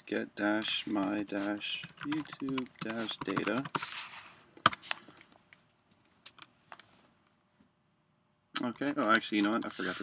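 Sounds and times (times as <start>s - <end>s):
computer keyboard keystrokes: 1.8s - 3.8s.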